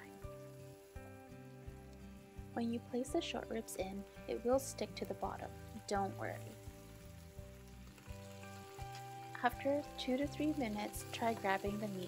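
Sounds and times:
meat sizzling in hot oil: 0.0s - 12.0s
soft background music: 0.0s - 12.0s.

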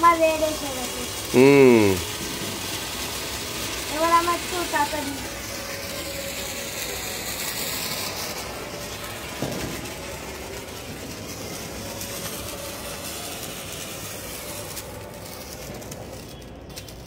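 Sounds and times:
sparklers fizzing and crackling: 0.0s - 17.0s.

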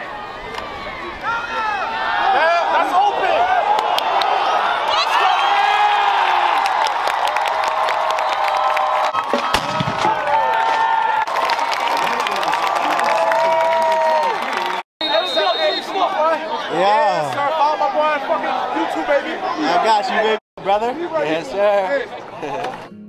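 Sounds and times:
stadium crowd cheering: 0.0s - 20.4s.

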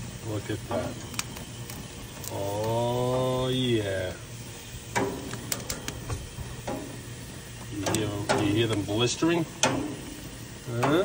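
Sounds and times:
peppers sizzling on grill: 0.0s - 11.0s
pops and crackles: 0.8s - 2.8s, 4.9s - 6.8s.

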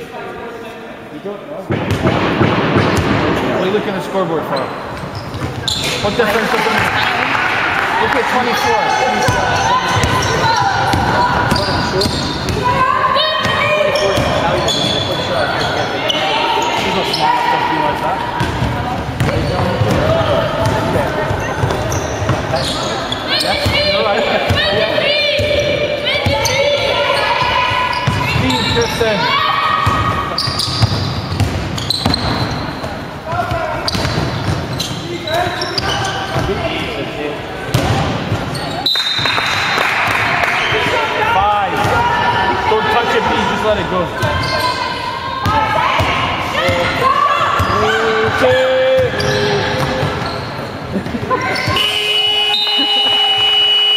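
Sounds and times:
basketball bouncing on wooden court: 1.7s - 3.4s, 9.2s - 12.8s, 18.4s - 22.6s, 29.8s - 35.0s
players calling out: 2.8s - 53.9s.

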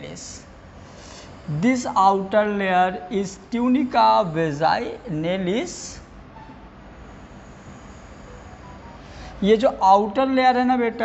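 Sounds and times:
room noise hiss and rumble: 0.0s - 11.0s.

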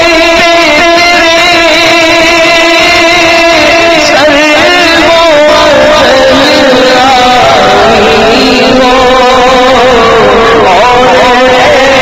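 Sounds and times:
low rough noise: 0.0s - 12.0s
man singing into a microphone: 0.0s - 12.0s.

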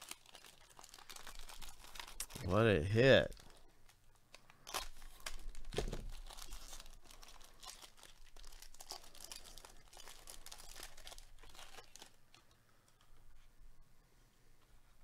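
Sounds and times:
wrapper crackling and ripping: 0.0s - 3.6s, 4.6s - 12.5s.

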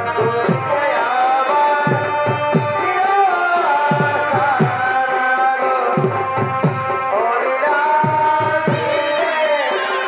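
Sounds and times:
reed pipe melody: 0.0s - 10.0s.

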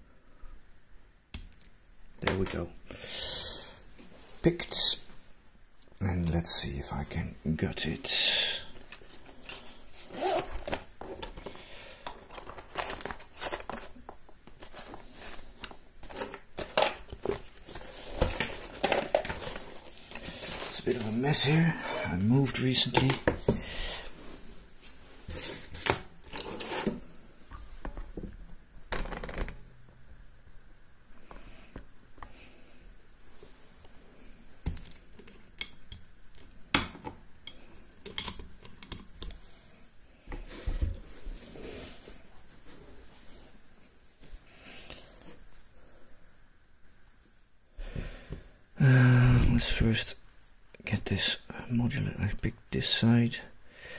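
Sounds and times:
fabric tool roll rustling: 8.8s - 11.4s, 12.4s - 22.1s.

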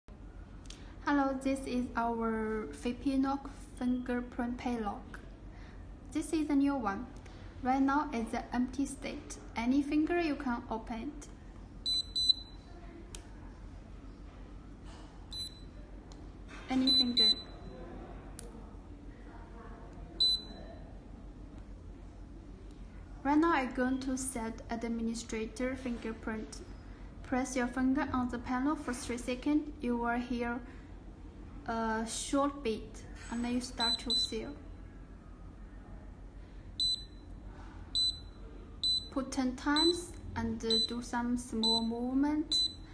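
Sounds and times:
short high beeps: 11.9s - 12.6s, 16.8s - 17.7s, 36.8s - 37.2s, 38.0s - 39.1s.

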